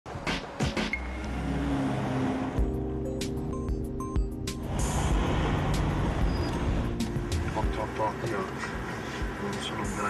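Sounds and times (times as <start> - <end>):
car engine humming: 0.6 - 10.0.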